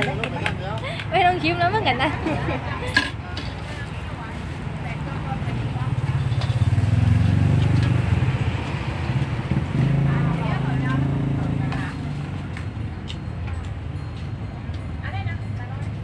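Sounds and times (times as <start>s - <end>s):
vehicle engine droning: 4.1s - 13.9s.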